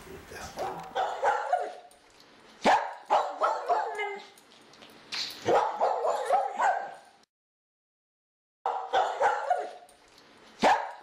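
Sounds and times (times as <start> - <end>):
dog barking and yipping: 0.6 - 2.0, 2.6 - 4.4, 5.4 - 7.2, 8.7 - 9.9, 10.6 - 11.0.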